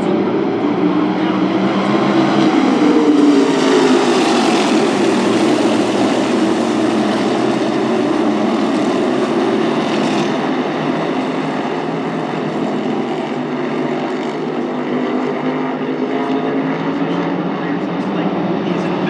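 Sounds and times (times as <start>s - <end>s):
race car engines at full throttle: 0.0s - 19.0s.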